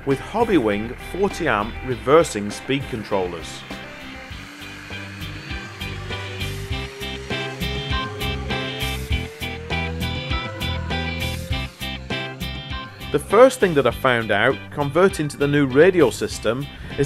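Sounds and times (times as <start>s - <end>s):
model plane electric motors whining: 0.2s - 14.6s.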